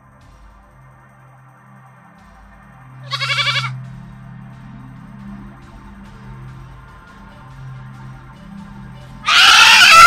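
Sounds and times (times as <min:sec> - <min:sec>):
background music with low drone: 0:00.0 - 0:10.0
goat bleating: 0:03.0 - 0:03.8, 0:09.3 - 0:10.0.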